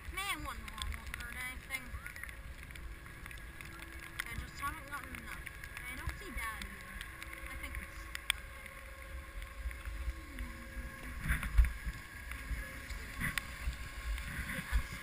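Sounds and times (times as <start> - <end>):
skis sliding on packed snow: 0.0 - 8.4, 9.0 - 15.0
wind on microphone: 0.0 - 15.0.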